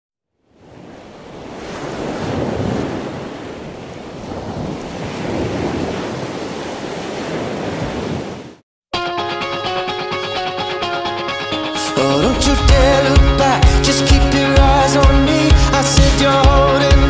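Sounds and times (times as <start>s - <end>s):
ocean waves: 0.4s - 8.6s, 11.7s - 17.0s.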